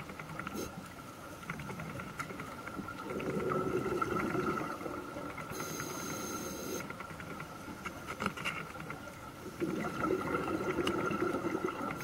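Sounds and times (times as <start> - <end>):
scuba exhalation bubbling: 3.0 - 5.6, 9.5 - 12.0
faint high hiss: 3.9 - 7.1
faint high whine: 5.4 - 7.0.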